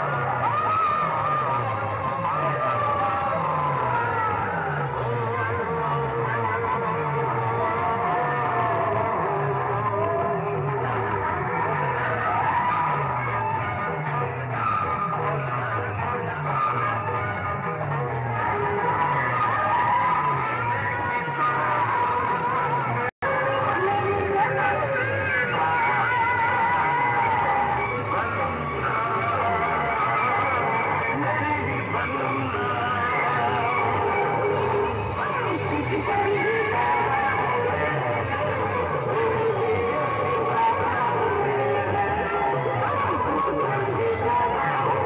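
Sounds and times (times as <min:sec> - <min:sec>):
distorted loud music through loudspeakers: 0:00.0 - 0:45.0.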